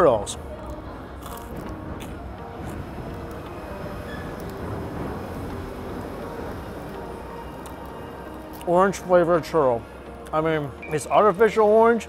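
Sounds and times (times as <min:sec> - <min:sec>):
quiet background music: 0:00.0 - 0:12.0
ambient hum: 0:00.4 - 0:10.9.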